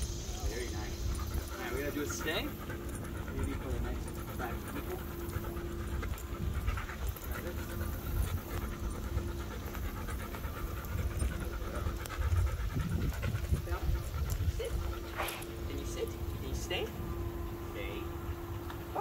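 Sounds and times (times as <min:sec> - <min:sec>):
dog panting: 0:00.0 - 0:19.0.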